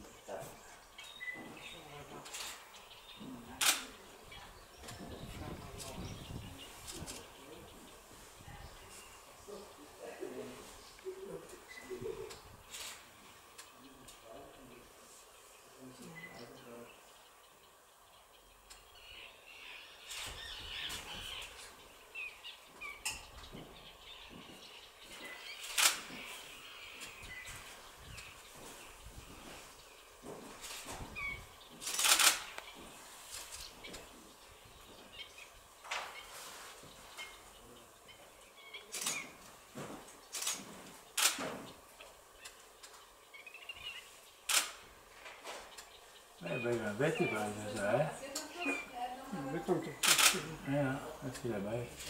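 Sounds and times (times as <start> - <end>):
small birds chirping: 0.0 - 52.0.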